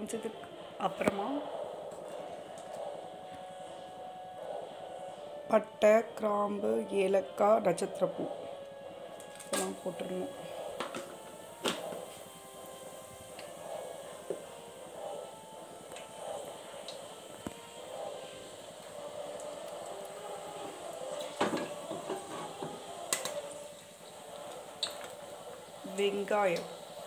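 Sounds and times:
spices frying in hot oil: 9.2s - 27.0s.

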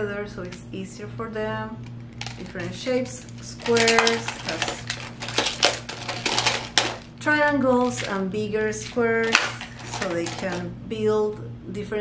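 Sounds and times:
plastic tiles clacking: 3.6s - 7.1s, 7.8s - 8.2s, 8.8s - 10.6s.

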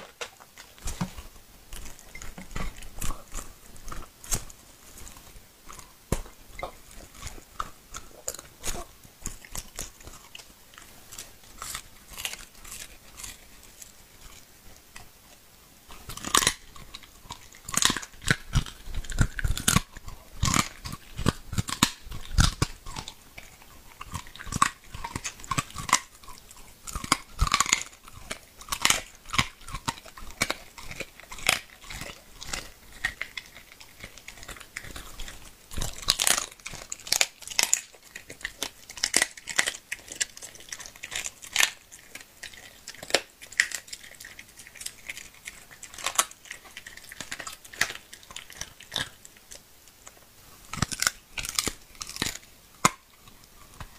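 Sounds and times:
dog chewing meat and bone: 0.0s - 53.9s.

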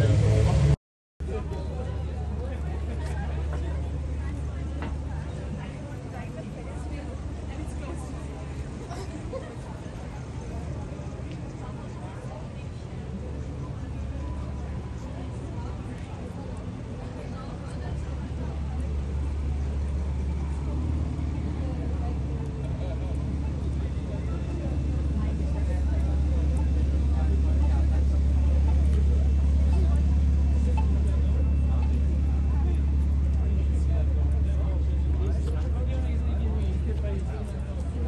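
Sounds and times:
traffic rumble: 0.0s - 38.0s
voices of passers-by: 0.0s - 38.0s.

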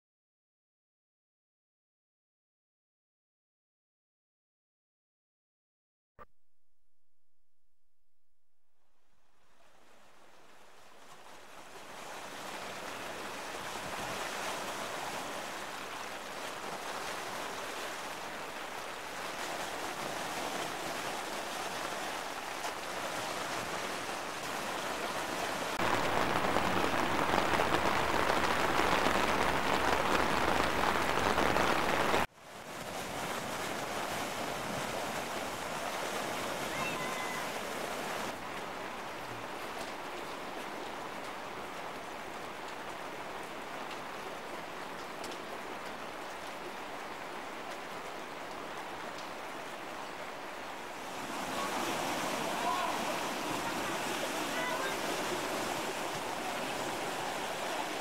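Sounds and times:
river water rushing under bridge: 9.2s - 58.0s.

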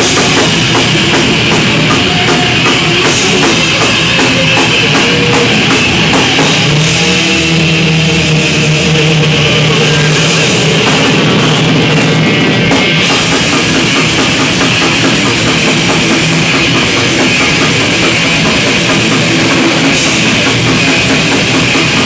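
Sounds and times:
bass guitar: 0.0s - 22.0s
distorted electric guitar: 0.0s - 22.0s
drum kit: 0.0s - 22.0s.

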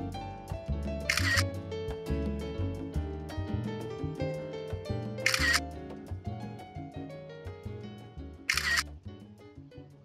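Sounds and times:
background music: 0.0s - 10.0s
camera shutter: 1.1s - 1.4s, 5.2s - 5.6s, 8.5s - 8.9s.

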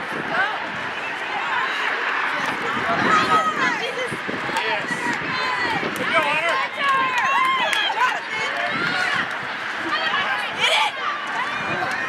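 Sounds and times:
voices shouting outdoors: 0.0s - 12.0s.

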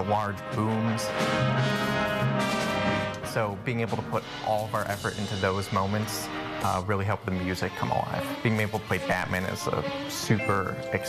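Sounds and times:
orchestra brass chord: 0.0s - 11.0s.

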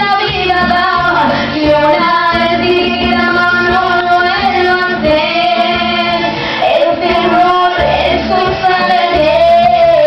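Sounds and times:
cumbia backing track: 0.0s - 10.0s
woman singing into microphone: 0.0s - 10.0s.

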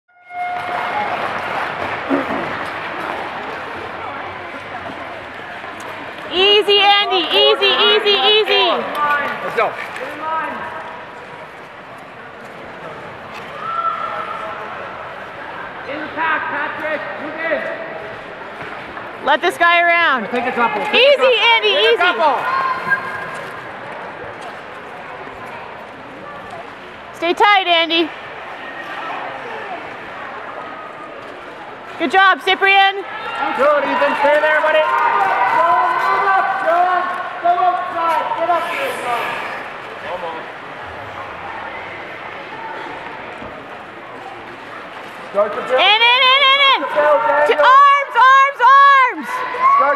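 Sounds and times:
spectators shouting and cheering: 0.2s - 11.2s, 13.0s - 24.4s, 28.0s - 49.9s
murmur of voices: 0.6s - 49.9s.

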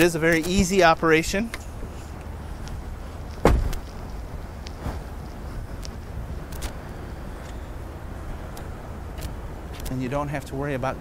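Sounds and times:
low steady rumble: 0.0s - 11.0s
car panel thump: 3.4s - 3.8s.

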